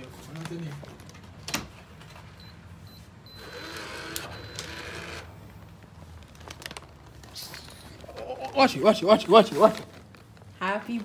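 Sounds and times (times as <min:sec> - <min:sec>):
lock motor whirring: 0:03.4 - 0:05.3.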